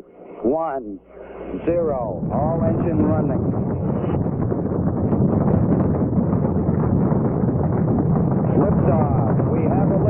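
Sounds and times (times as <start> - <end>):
rocket engines low rumbling: 1.1 - 10.0.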